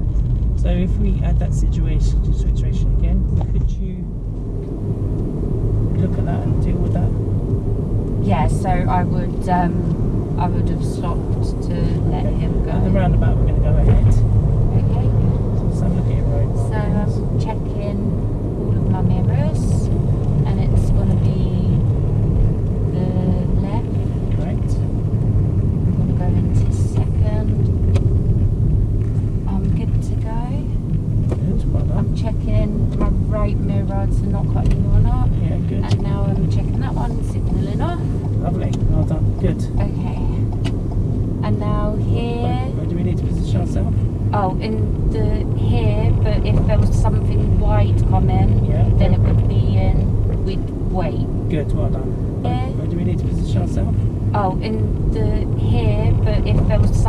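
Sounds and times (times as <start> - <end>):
car road and engine rumble: 0.0 - 57.0
voices talking: 8.2 - 21.8, 23.0 - 24.9, 26.2 - 27.7, 29.5 - 30.7, 31.3 - 40.5, 41.4 - 57.0.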